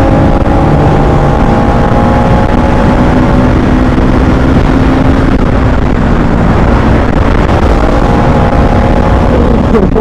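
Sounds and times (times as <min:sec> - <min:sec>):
motorcycle engine running steadily: 0:00.0 - 0:10.0
wind rush on microphone: 0:00.0 - 0:10.0.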